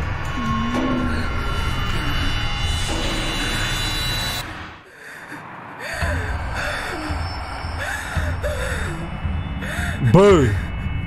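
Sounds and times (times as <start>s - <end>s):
dark horror film music: 0.0s - 11.0s
woman gasping and whimpering: 4.8s - 10.0s.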